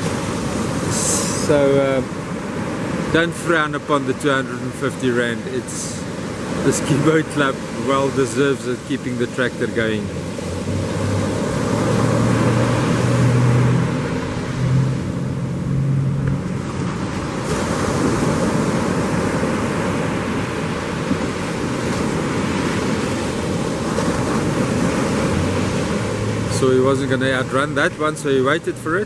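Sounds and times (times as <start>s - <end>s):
ocean surf breaking: 0.0s - 29.0s
low engine hum: 4.1s - 29.0s.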